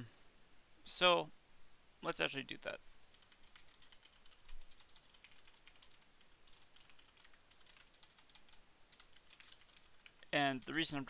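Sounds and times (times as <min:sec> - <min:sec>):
computer keyboard typing: 0:03.1 - 0:11.0.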